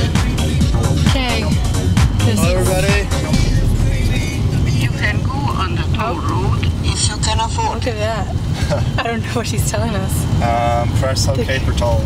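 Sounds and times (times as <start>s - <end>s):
car engine and tyres rumbling: 0.0s - 12.0s.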